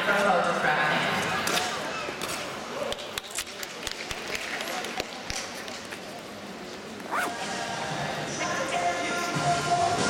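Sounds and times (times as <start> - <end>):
arena background noise: 0.0 - 10.0
music over loudspeakers: 7.2 - 10.0.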